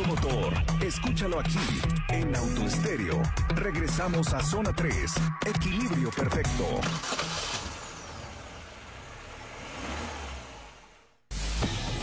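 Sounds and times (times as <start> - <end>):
car engine revving: 6.8 - 12.0.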